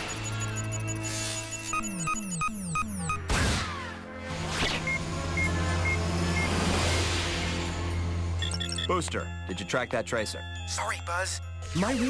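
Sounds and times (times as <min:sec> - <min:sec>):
targeting scope beeping: 0:00.0 - 0:03.3
background music: 0:00.0 - 0:12.0.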